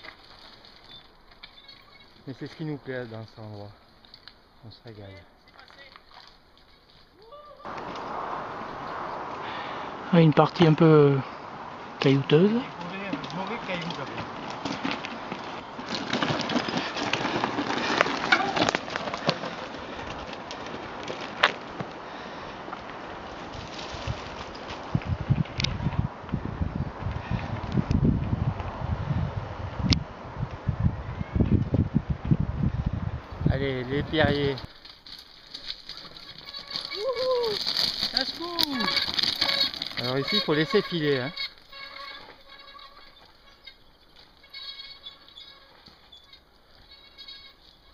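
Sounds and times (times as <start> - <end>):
stones and bike parts rattling: 0.0 - 8.1, 12.0 - 26.0, 33.3 - 47.9
bike tyres rolling over rocks: 0.0 - 9.0, 12.0 - 26.5, 33.2 - 47.9
person calling out: 7.2 - 7.7, 37.0 - 37.6.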